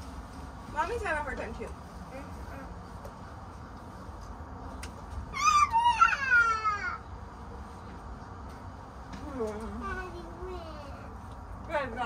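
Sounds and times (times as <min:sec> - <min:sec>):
child squealing: 0:05.3 - 0:07.0.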